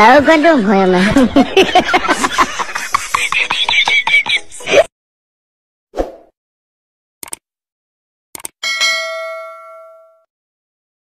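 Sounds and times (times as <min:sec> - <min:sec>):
mouse clicks: 0:07.2 - 0:07.4, 0:08.4 - 0:08.6
notification bell ding: 0:08.6 - 0:10.3.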